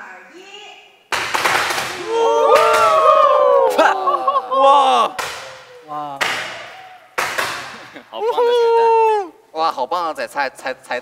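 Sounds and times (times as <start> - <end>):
long held ah: 2.0 - 9.4
voices calling out: 2.0 - 9.4.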